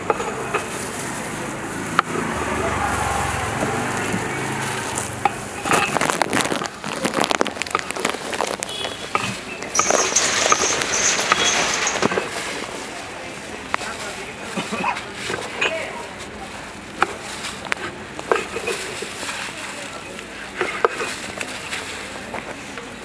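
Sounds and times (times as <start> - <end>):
background voices: 0.0 - 23.0
street noise: 0.0 - 23.0.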